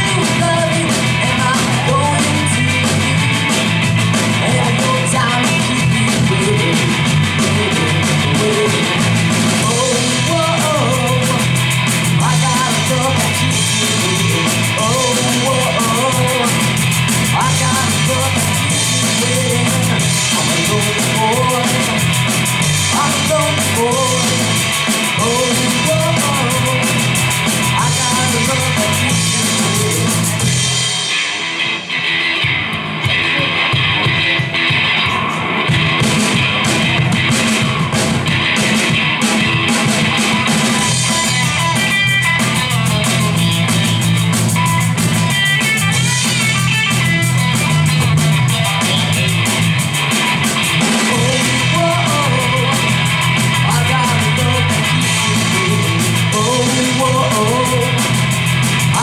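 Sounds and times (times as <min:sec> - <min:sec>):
bass guitar: 0:00.0 - 0:59.0
drum kit: 0:00.0 - 0:59.0
electric guitar: 0:00.0 - 0:59.0.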